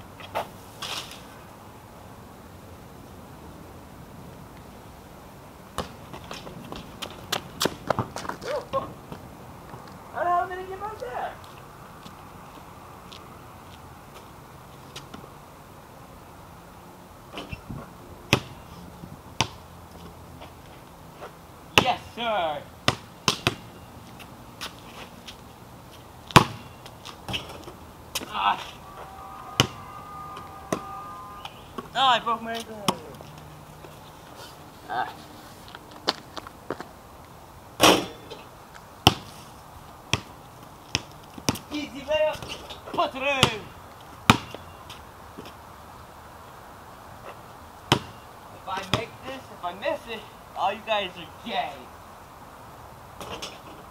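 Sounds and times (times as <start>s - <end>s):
faint background hiss: 0.0s - 53.9s
basketball bouncing on pavement: 5.8s - 9.9s, 17.4s - 18.6s, 19.4s - 19.6s, 22.8s - 23.7s, 26.3s - 33.4s, 39.0s - 39.4s, 40.1s - 41.7s, 43.4s - 45.5s, 47.9s - 48.2s, 48.8s - 49.2s.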